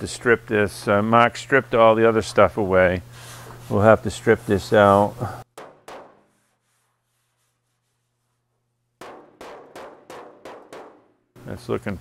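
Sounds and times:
hammer striking sheet metal: 5.5 - 6.6, 9.0 - 11.4.

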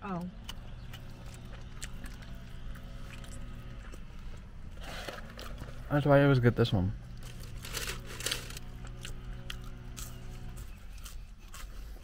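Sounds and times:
low car cabin hum: 0.0 - 12.0
chewing and mouth clicks: 0.2 - 4.5, 8.7 - 12.0.

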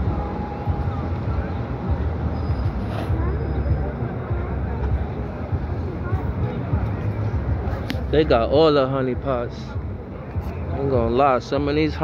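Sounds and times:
people's voices: 0.0 - 12.0
vehicle engines humming: 0.0 - 12.0.

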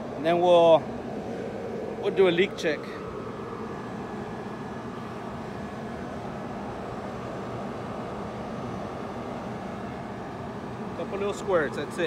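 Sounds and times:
refrigeration unit humming: 0.0 - 12.0.

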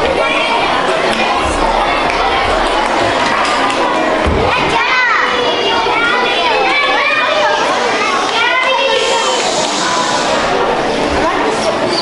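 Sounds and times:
children talking and calling out: 0.0 - 12.0
high children's voices: 0.0 - 12.0.

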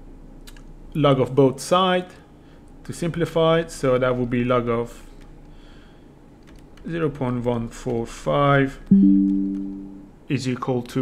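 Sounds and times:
steady low hum: 8.8 - 10.3
stylus tapping on tablet screen: 8.9 - 10.0.

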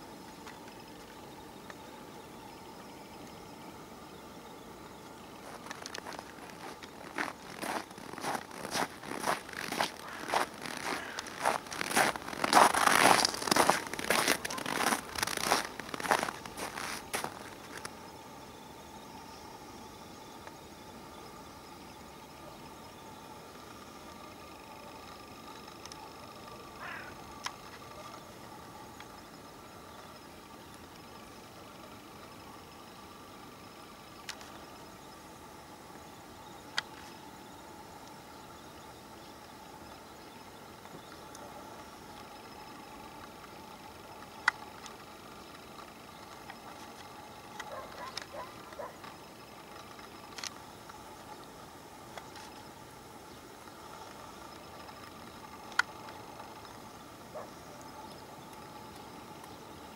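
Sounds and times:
faint outdoor background: 0.0 - 59.9
footsteps crunching in snow: 5.4 - 17.9.

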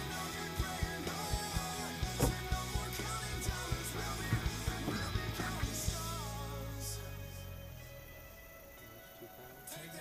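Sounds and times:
background music beat: 0.0 - 10.0.

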